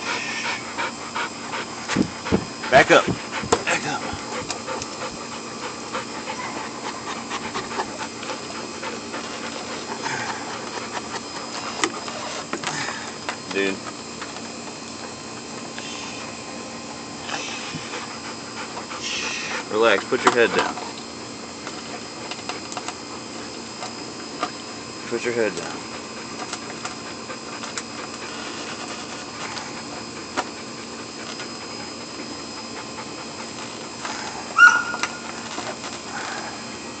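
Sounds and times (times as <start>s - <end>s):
dog panting: 0.0s - 12.5s, 14.7s - 21.0s, 25.2s - 34.8s
steady low hum: 0.0s - 37.0s
dog whining: 6.0s - 8.4s, 34.1s - 35.3s.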